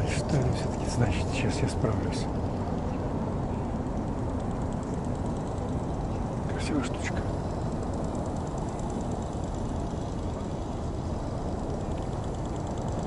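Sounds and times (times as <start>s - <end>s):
city square background rumble: 0.0s - 13.0s.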